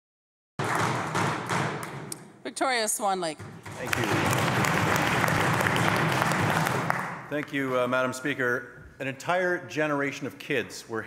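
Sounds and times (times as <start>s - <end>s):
crowd applauding: 3.8s - 7.4s.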